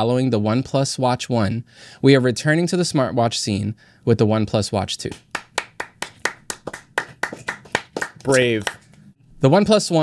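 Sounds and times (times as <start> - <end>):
hand clapping: 5.1 - 9.0.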